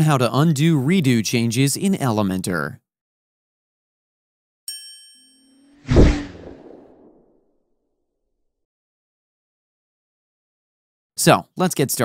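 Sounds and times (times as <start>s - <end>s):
whoosh: 5.8s - 7.2s
deep hit: 5.9s - 7.2s
low hum: 5.9s - 7.2s.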